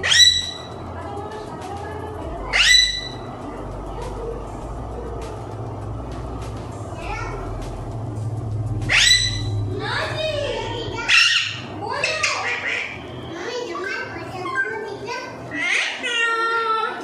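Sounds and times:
parakeet squawking: 0.0s - 0.8s, 2.4s - 3.3s, 8.8s - 14.0s, 15.5s - 16.6s.

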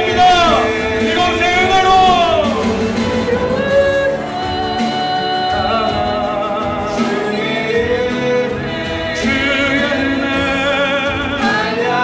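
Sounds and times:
acoustic guitar: 0.0s - 12.0s
keyboard: 0.0s - 12.0s
singers holding long notes: 0.0s - 12.0s.

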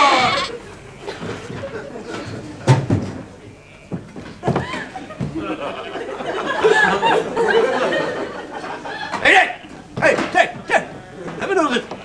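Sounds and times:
sheep bleating: 0.0s - 0.6s, 10.6s - 12.0s.

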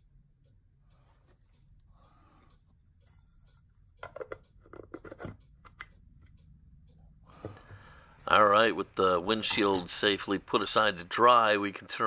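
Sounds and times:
clicks and rustles of small tools: 9.4s - 10.0s.

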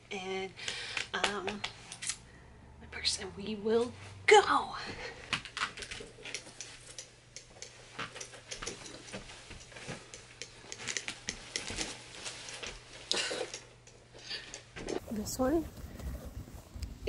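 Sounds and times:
clothing rustling: 10.9s - 13.1s, 15.0s - 17.0s.

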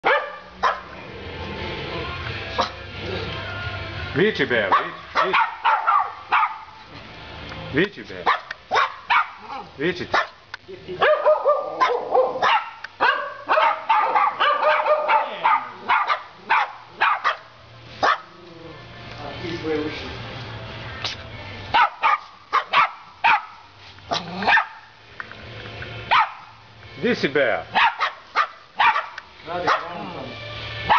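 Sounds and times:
dogs barking and yipping: 0.0s - 1.0s, 2.5s - 3.0s, 4.6s - 7.0s, 8.2s - 18.6s, 21.7s - 25.0s, 25.9s - 26.8s, 27.6s - 30.9s.

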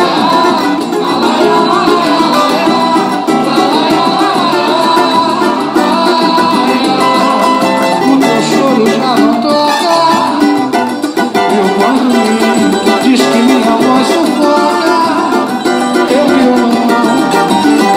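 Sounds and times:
cavaquinho strumming chords: 0.0s - 17.9s.

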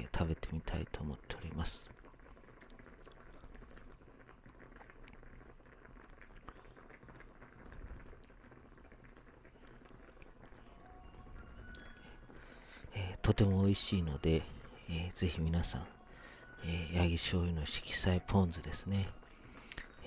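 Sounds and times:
broth simmering in a pot: 0.0s - 20.0s.

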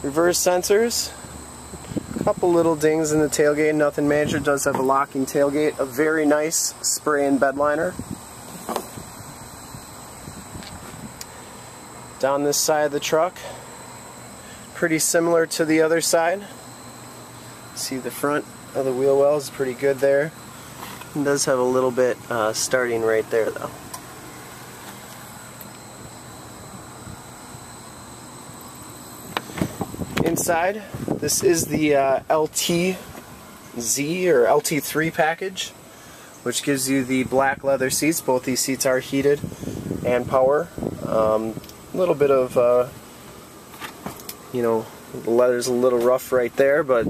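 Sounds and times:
faint high-pitched whine: 0.0s - 47.0s
low hiss: 0.0s - 47.0s
steady background hum: 0.0s - 47.0s.

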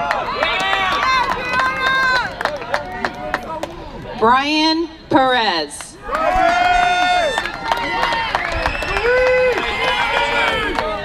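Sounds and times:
audience cheering and shouting: 6.0s - 11.0s.

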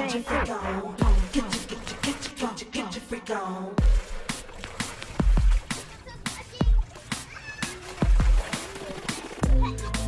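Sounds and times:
electronic club music: 0.0s - 2.2s.

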